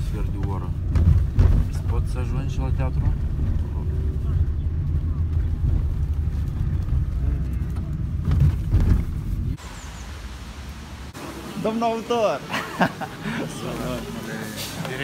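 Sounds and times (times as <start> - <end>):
car driving rumble inside cabin: 0.0 - 9.6
outdoor background: 0.0 - 15.0.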